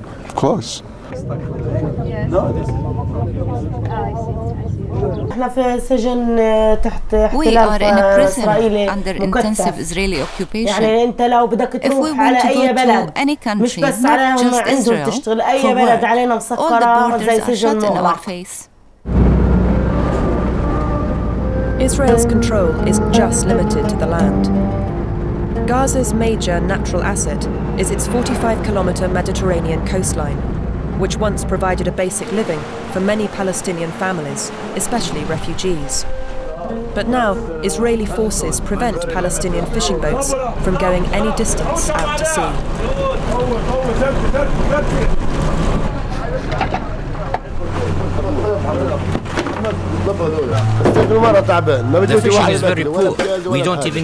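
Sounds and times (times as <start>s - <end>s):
men talking: 0.0s - 5.3s, 13.7s - 18.2s, 36.5s - 54.0s
boat engine low hum: 0.8s - 5.8s, 19.0s - 53.0s
car engine and tyre rumble: 24.7s - 32.9s.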